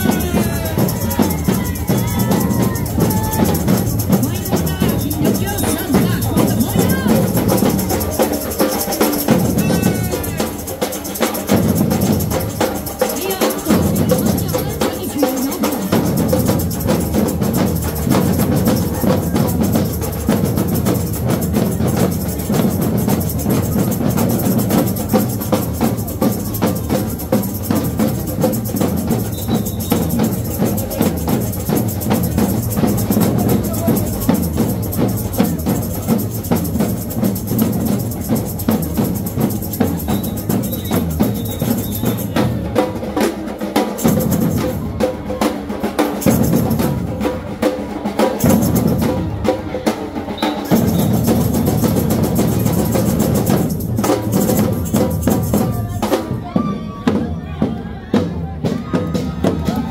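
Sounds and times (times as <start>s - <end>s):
bass drums: 0.0s - 43.0s, 50.7s - 59.9s
samba drum troupe playing: 0.0s - 59.9s
snare drums: 0.0s - 59.9s.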